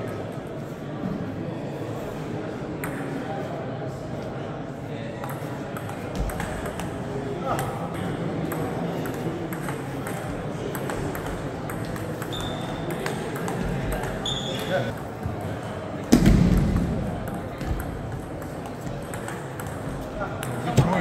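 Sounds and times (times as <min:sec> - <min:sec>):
voices in a hall: 0:00.0 - 0:21.0.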